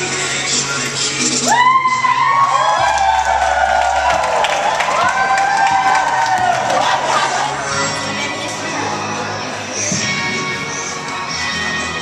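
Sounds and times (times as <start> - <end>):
hip-hop music with heavy bass: 0.0 - 12.0
crowd whooping and cheering: 1.3 - 7.8.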